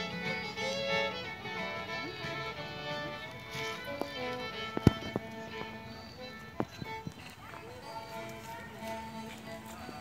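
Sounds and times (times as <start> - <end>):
small band playing live: 0.0 - 7.3
people's voices: 0.1 - 10.0.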